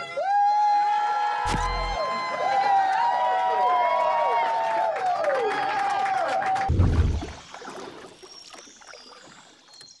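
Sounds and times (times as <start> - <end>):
crowd cheering: 0.0 - 6.8.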